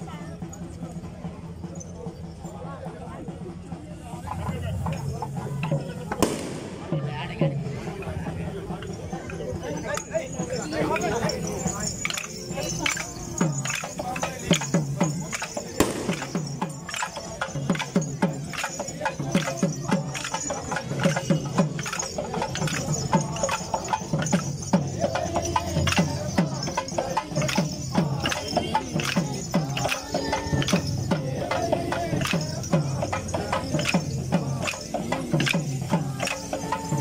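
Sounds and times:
men calling out: 4.0s - 37.0s
loud sharp crack: 6.2s - 6.9s.

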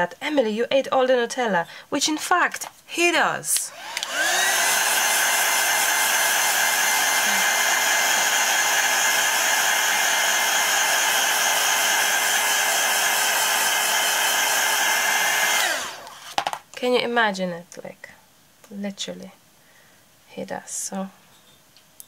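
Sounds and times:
heat tool motor whine: 3.7s - 16.4s
rush of hot air: 4.1s - 16.0s.

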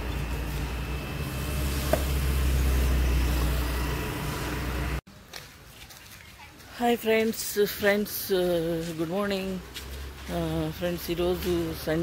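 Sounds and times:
vehicle engine rumbling: 0.0s - 5.2s, 7.1s - 12.0s.

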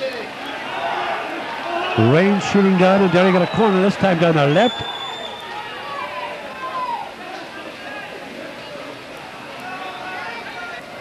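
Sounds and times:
players calling: 0.0s - 8.3s
distant crowd voices: 0.0s - 11.0s
steady background noise: 0.0s - 11.0s.

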